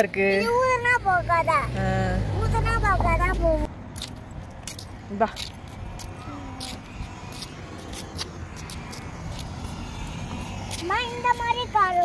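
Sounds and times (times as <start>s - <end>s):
quiet street background: 0.0s - 12.0s.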